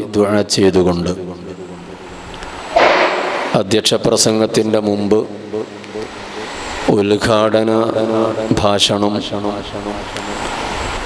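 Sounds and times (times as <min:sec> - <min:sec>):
man speaking over microphone: 0:00.0 - 0:01.8, 0:03.5 - 0:06.1, 0:06.9 - 0:10.1
steady rushing noise: 0:02.5 - 0:04.2.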